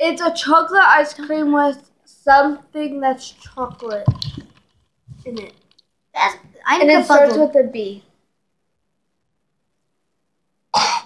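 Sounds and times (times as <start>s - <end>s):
boy coughing: 10.8s - 11.0s.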